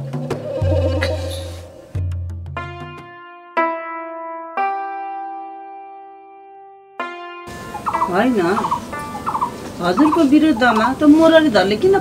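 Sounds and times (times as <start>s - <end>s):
turkey calling: 0.0s - 1.9s, 7.5s - 11.7s
keyboard notes: 0.0s - 12.0s
outdoor background noise: 7.5s - 12.0s.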